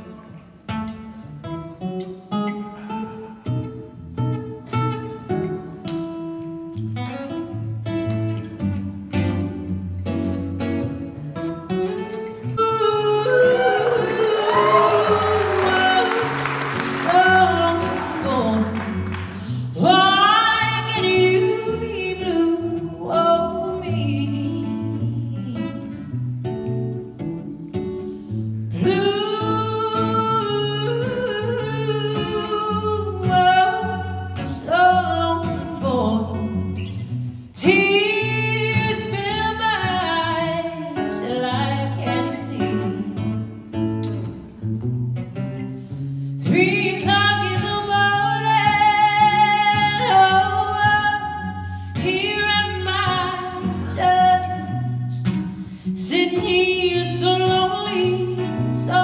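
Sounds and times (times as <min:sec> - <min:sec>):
woman singing into a microphone: 0:12.4 - 0:26.1, 0:28.7 - 0:43.6, 0:46.4 - 0:59.0.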